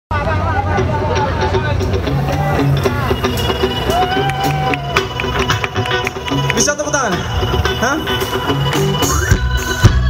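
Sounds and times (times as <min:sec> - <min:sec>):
crowd babble: 0:00.1 - 0:10.0
held bass note: 0:00.7 - 0:10.0.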